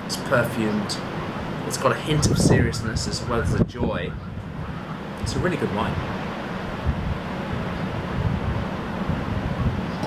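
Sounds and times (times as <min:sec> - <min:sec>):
waves crashing on shore: 0:00.0 - 0:03.6, 0:04.9 - 0:09.9
wind buffeting microphone: 0:00.3 - 0:10.0.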